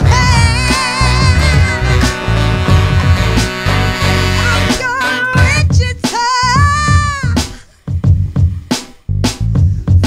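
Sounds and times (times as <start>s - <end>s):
heavy bass hits: 0.0s - 4.8s
background music with a beat: 0.0s - 10.0s.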